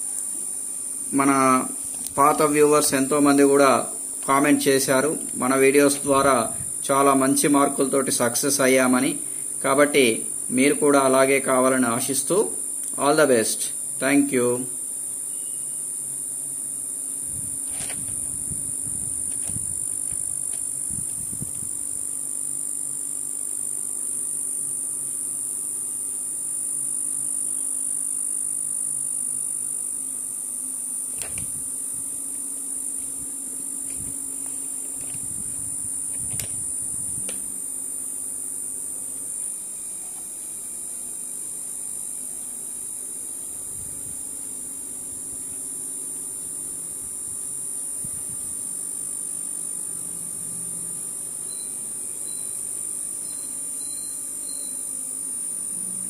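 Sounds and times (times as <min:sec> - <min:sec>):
electrical hum: 0:00.0 - 0:56.0
high-pitched whine: 0:01.1 - 0:15.9, 0:49.7 - 0:56.0.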